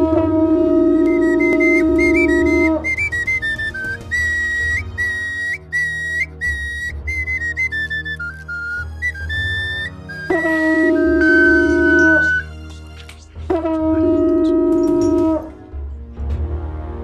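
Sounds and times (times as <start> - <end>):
low horn blast: 0.0 - 3.5, 10.3 - 12.5, 13.5 - 15.5
high-pitched flute melody: 0.0 - 12.6, 13.5 - 15.5.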